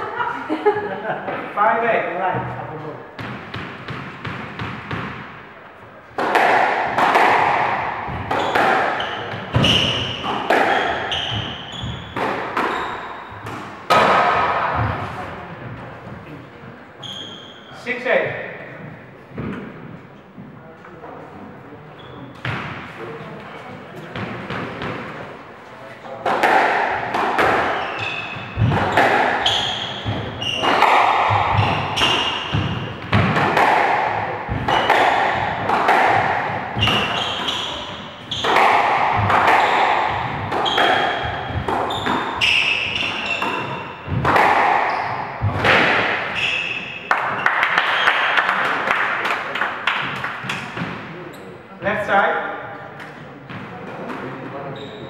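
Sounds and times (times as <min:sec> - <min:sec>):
squash ball struck by rackets: 0:03.2 - 0:05.4, 0:06.1 - 0:15.3, 0:22.4 - 0:22.9, 0:26.2 - 0:48.4
sneakers squeaking on wooden floor: 0:06.2 - 0:16.3, 0:17.0 - 0:17.8, 0:21.9 - 0:22.9, 0:26.5 - 0:48.3, 0:50.0 - 0:51.6, 0:54.6 - 0:55.0
ball smacking off walls: 0:26.2 - 0:46.2.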